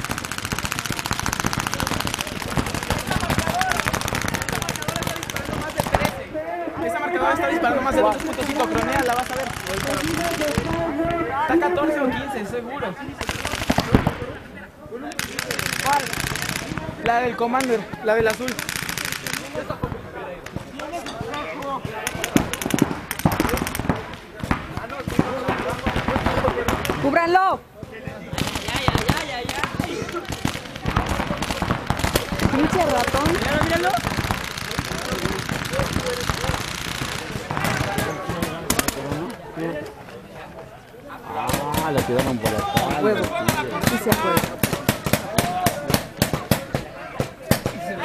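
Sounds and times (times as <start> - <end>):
paintball markers firing rapidly: 0.0 - 6.3, 7.2 - 11.2, 15.1 - 19.8, 20.4 - 27.3, 28.2 - 39.4, 41.4 - 48.0
people shouting: 0.4 - 12.6, 28.3 - 39.3, 41.1 - 48.0.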